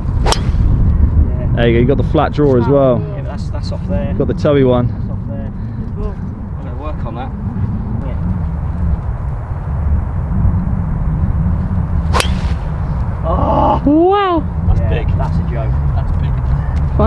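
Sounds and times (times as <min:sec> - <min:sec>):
wind buffeting microphone: 0:00.0 - 0:17.0
golf club striking ball: 0:00.2 - 0:00.8, 0:12.1 - 0:12.8.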